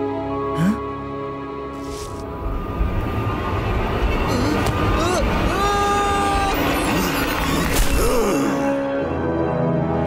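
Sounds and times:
cartoon character crying out: 4.5 - 7.2.

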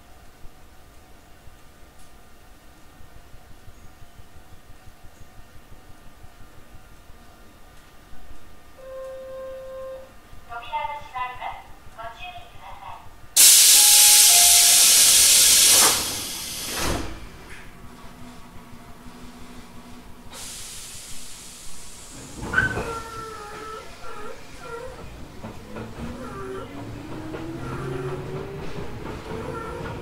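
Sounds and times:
recorded train announcement: 8.8 - 14.9
compressed air hiss: 13.4 - 17.2, 20.3 - 23.2.

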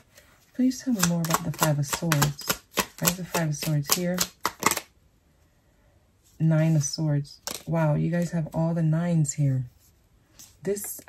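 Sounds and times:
cards shuffled by hand: 0.8 - 4.9.

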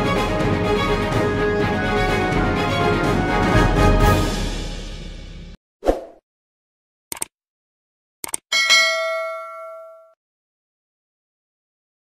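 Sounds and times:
quick clicks: 7.1 - 7.3, 8.2 - 8.5
bell ding: 8.5 - 10.2.

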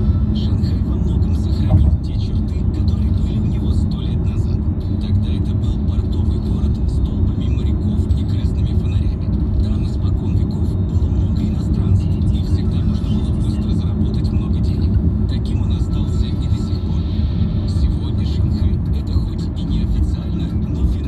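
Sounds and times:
car driving rumble: 0.0 - 21.0.

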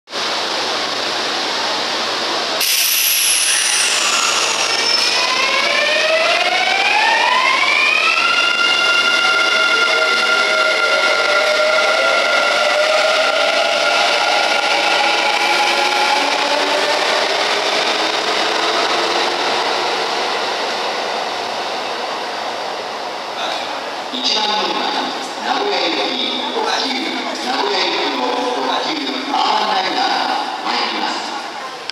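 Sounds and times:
electric train pulling away: 0.2 - 24.1.

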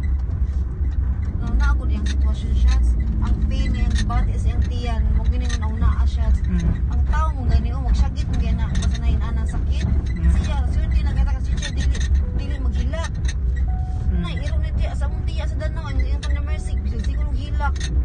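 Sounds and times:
car engine and road noise: 0.0 - 18.0
person talking: 1.4 - 13.1, 14.1 - 17.8.

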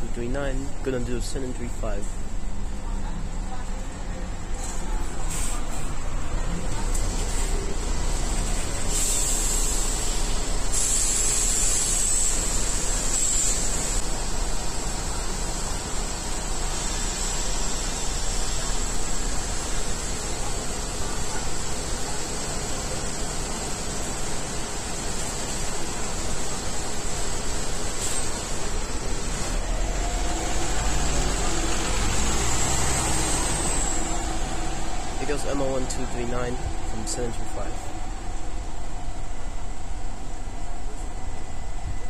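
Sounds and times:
bus engine idling: 0.0 - 42.0
air brake hiss: 8.8 - 14.0, 27.9 - 28.5.

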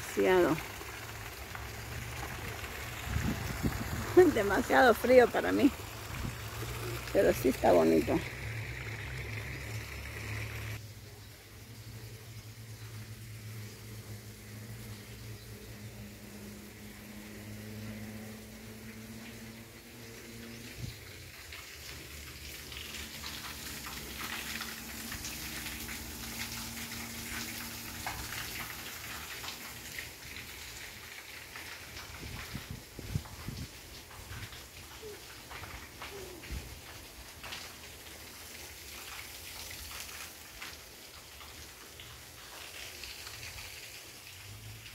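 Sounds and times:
crackles and clicks: 20.6 - 44.9.

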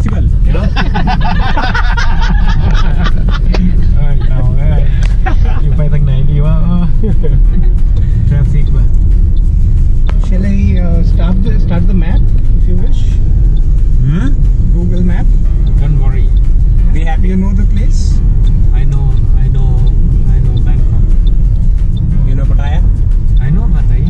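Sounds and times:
voices: 0.0 - 8.9, 10.0 - 24.0
music: 0.0 - 24.0
taxi rumble in traffic: 0.0 - 24.0.

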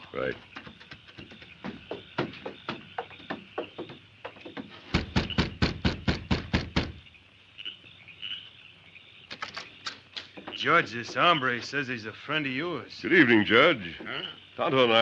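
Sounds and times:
knocking on door: 0.4 - 7.0, 10.3 - 11.5.

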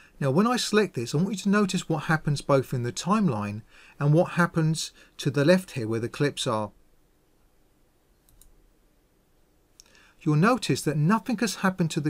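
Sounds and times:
computer mouse click: 8.2 - 8.6.

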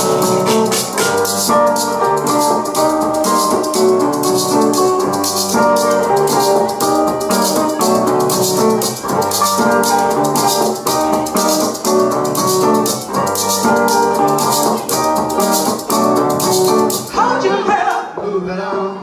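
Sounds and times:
small four-string guitar: 0.0 - 17.2.

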